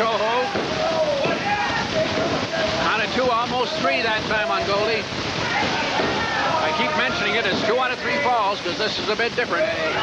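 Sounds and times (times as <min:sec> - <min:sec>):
crowd roar: 0:00.0 - 0:08.7, 0:09.4 - 0:10.0
voices shouting: 0:00.0 - 0:10.0.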